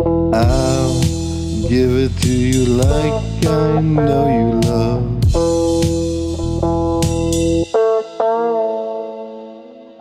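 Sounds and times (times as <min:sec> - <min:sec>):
bass guitar: 0:00.0 - 0:08.2
held guitar chord: 0:00.0 - 0:10.0
plucked guitar notes: 0:00.0 - 0:10.0.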